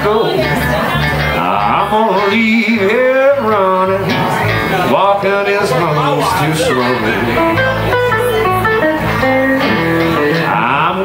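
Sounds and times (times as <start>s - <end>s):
bass guitar: 0.0s - 11.0s
electric blues guitar lick: 0.0s - 11.0s.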